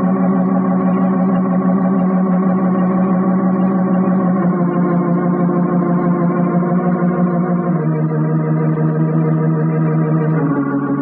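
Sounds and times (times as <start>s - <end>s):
dramatic organ chords: 0.0s - 11.0s.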